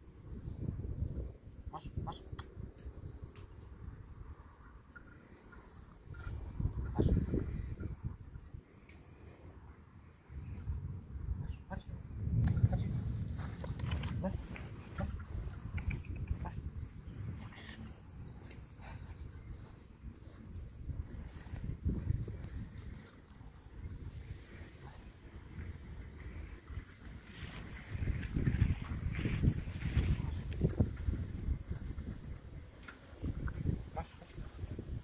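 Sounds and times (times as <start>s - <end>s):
wind buffeting microphone: 0.0s - 4.5s, 5.6s - 8.7s, 10.2s - 35.0s
man's quiet voice: 1.7s - 2.4s, 11.4s - 12.0s, 12.6s - 13.1s, 13.9s - 15.5s
steady low rumble: 10.1s - 35.0s.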